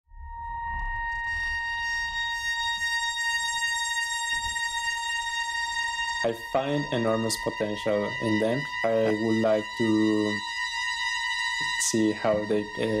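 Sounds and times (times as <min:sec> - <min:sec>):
high steady electronic tone: 0:00.1 - 0:13.0.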